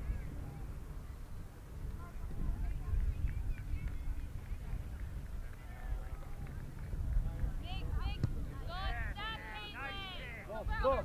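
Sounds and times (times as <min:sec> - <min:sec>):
soccer ball kick thud: 0:08.1 - 0:08.4.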